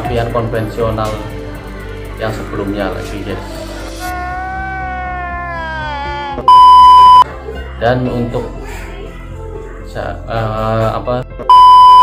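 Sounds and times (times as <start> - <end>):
steady electronic beep: 6.5 - 7.2, 11.5 - 12.0.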